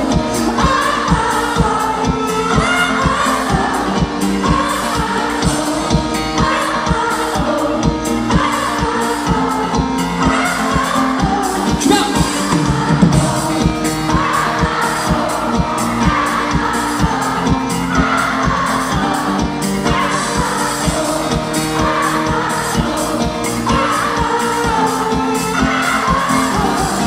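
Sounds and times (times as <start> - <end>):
bass guitar: 0.0 - 27.0
lead and backing singing: 0.0 - 27.0
steady drum beat: 0.0 - 27.0.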